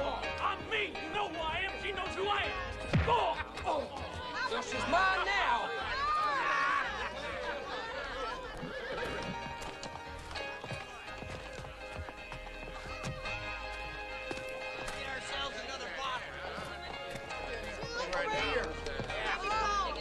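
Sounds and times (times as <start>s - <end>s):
horse whinnying: 8.0s - 9.8s
horse hooves clip-clopping: 8.2s - 15.6s, 16.2s - 19.7s.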